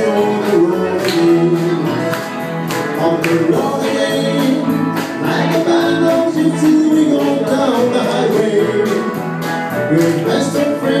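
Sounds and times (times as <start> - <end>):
country band playing: 0.0 - 11.0
pedal steel guitar: 0.0 - 11.0.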